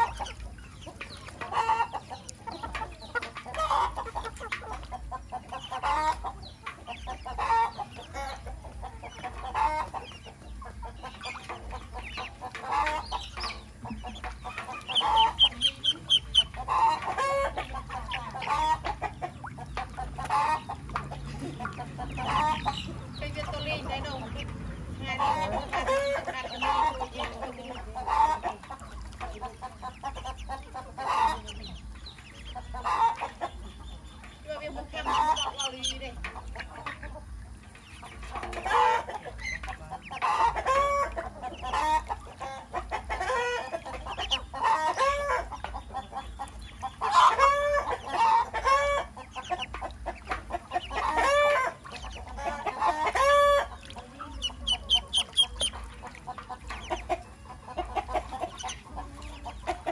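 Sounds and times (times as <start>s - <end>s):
chickens clucking: 0.0s - 59.9s.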